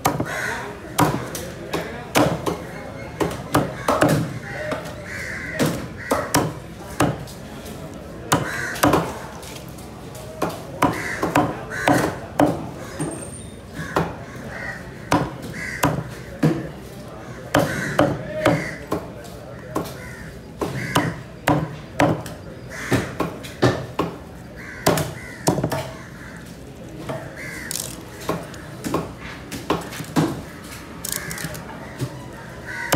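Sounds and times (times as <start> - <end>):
crow cawing: 0.1 - 1.1, 3.6 - 6.6, 8.4 - 9.1, 10.8 - 12.2, 13.8 - 16.2, 17.2 - 18.9, 19.5 - 21.2, 24.6 - 26.5, 27.2 - 28.7, 31.0 - 32.9.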